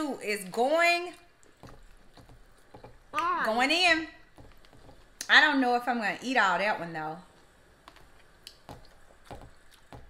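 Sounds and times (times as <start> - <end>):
chewing and handling food: 1.1 - 3.1, 7.3 - 10.0.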